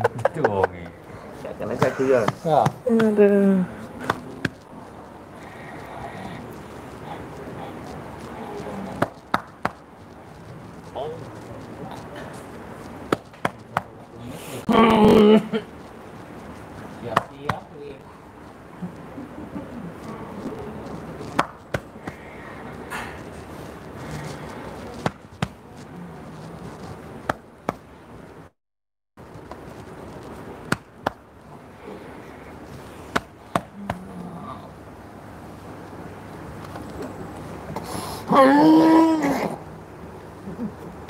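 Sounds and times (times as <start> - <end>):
low room noise: 0.0 - 28.6, 29.2 - 41.0.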